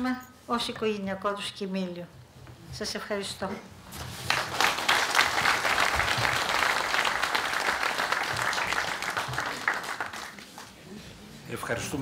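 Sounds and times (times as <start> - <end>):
audience applauding: 4.2 - 10.8.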